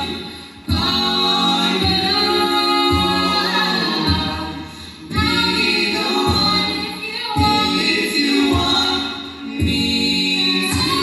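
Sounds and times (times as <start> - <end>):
a cappella group singing harmony: 0.0 - 11.0.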